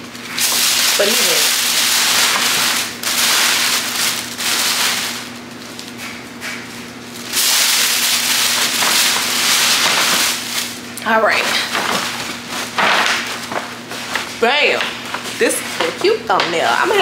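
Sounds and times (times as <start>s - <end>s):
tissue paper rustling: 0.3s - 6.1s, 7.2s - 16.2s.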